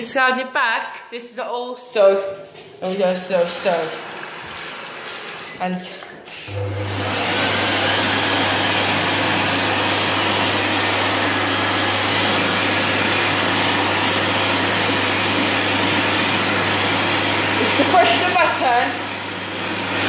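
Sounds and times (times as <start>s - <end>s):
hand dryer running: 2.0s - 20.0s.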